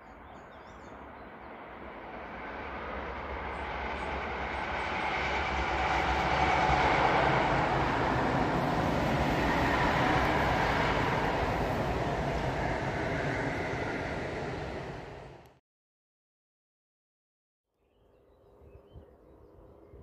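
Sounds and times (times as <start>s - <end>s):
rail noise: 0.1s - 15.6s
electric train passing: 0.9s - 15.6s.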